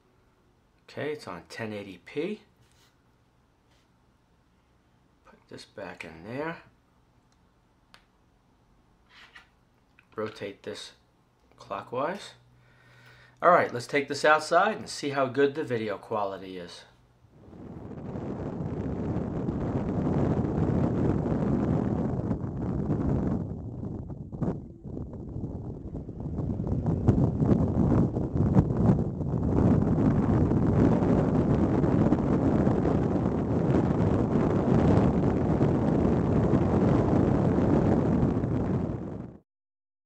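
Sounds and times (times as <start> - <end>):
wind rushing over microphone: 17.3 - 39.4.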